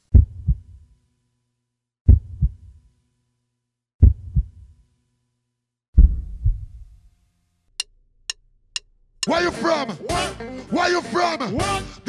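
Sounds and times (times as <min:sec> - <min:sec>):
deep heartbeat-like double thumps: 0:00.1 - 0:00.7, 0:02.1 - 0:02.7, 0:04.0 - 0:04.6, 0:06.0 - 0:07.0.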